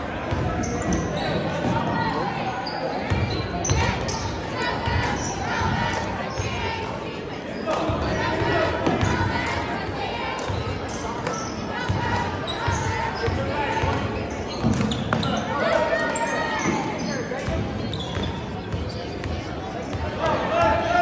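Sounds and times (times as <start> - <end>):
spectators and players calling: 0.0 - 21.0.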